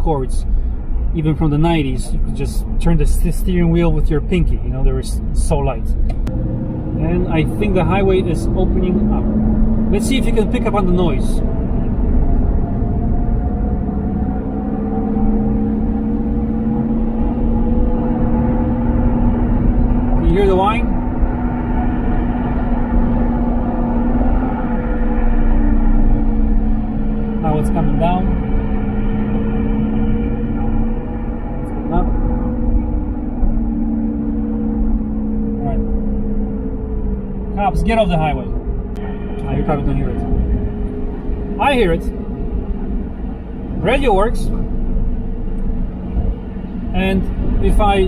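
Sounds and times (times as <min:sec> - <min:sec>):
car cabin road hum: 0:00.0 - 0:48.0
low rumble: 0:00.0 - 0:48.0.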